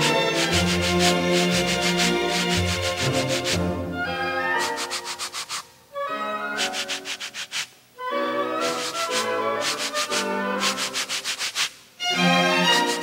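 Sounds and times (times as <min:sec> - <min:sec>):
music of held notes: 0:00.0 - 0:05.2, 0:08.0 - 0:11.3
wooden back scratcher rasping: 0:00.1 - 0:03.6, 0:04.5 - 0:05.7, 0:06.6 - 0:07.8, 0:08.6 - 0:11.8, 0:12.6 - 0:13.0.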